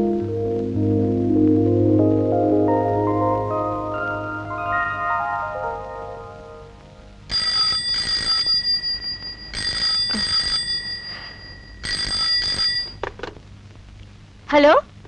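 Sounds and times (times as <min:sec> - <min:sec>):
telephone bell ringing: 0:07.3 - 0:13.0.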